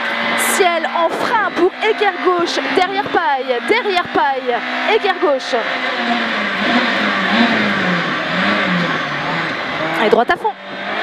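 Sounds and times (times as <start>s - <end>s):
car engine running hard: 0.0s - 11.0s.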